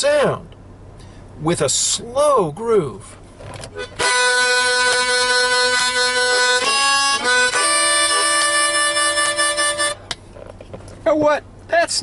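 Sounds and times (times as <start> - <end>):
harmonica chords: 3.7 - 10.2.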